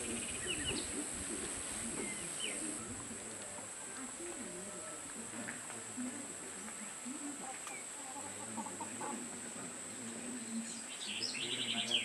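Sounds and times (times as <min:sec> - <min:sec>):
birds calling: 0:00.0 - 0:01.2, 0:01.8 - 0:02.9, 0:10.4 - 0:12.0.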